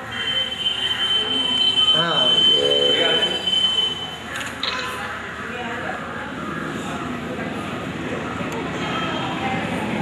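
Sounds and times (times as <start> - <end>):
people's voices: 0.0 - 10.0
high-pitched single tone: 1.9 - 4.2.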